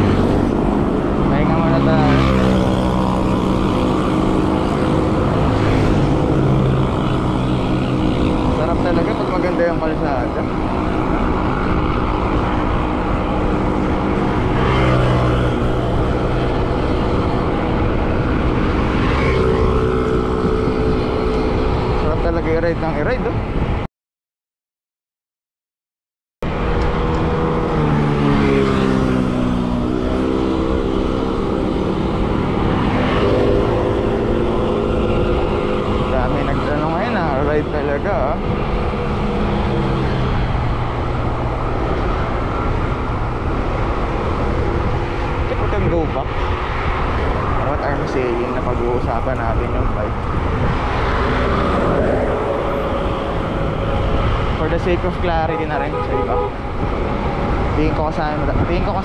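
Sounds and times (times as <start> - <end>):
vehicle engine drone: 0.0 - 23.9, 26.4 - 59.0
wind rumble on microphone: 0.0 - 23.9, 26.5 - 59.0.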